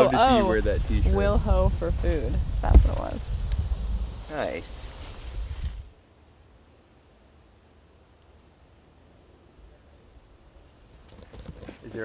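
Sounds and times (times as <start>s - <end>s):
low steady rumble: 0.0s - 5.9s.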